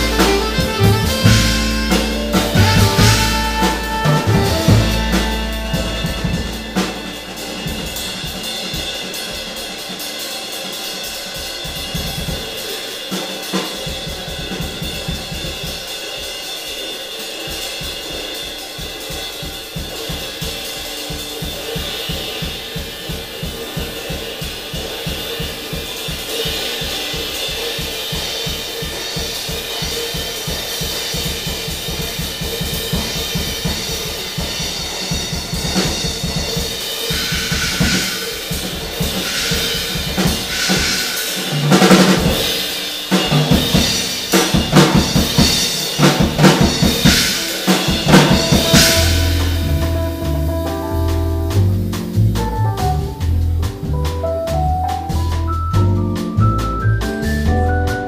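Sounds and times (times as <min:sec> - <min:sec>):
double bass: 0:00.0 - 0:08.2, 0:48.1 - 0:58.0
cymbal crashes: 0:00.0 - 0:13.9, 0:15.9 - 0:50.4
jazz drum kit: 0:00.0 - 0:58.0
keyboard: 0:53.9 - 0:58.0.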